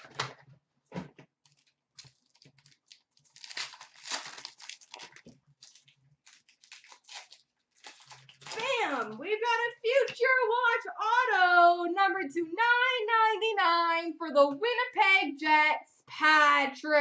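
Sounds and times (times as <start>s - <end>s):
wrappers tearing and crinkling: 1.4s - 9.2s.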